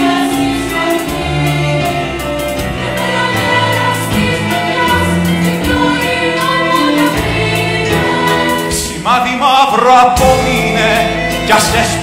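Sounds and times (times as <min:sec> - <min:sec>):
women's choir singing: 0:00.0 - 0:09.0
instrumental accompaniment: 0:00.0 - 0:12.0
low bass notes: 0:10.1 - 0:12.0.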